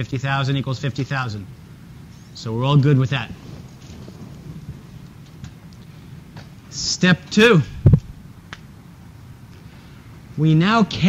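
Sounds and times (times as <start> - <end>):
low steady rumble: 0.0 - 11.0
faint clicks: 5.0 - 6.5, 7.9 - 9.7.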